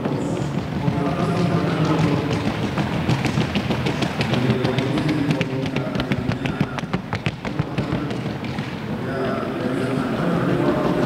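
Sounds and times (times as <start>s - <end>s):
horse hooves clicking: 0.0s - 11.0s.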